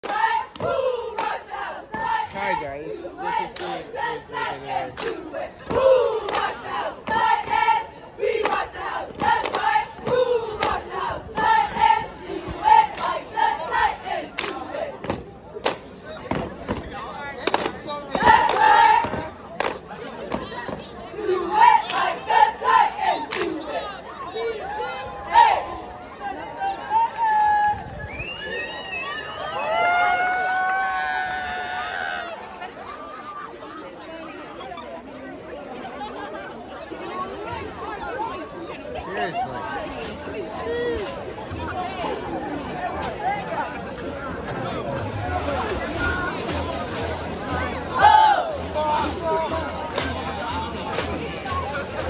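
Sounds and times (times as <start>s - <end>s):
people shouting a cheer: 48.0s - 48.6s.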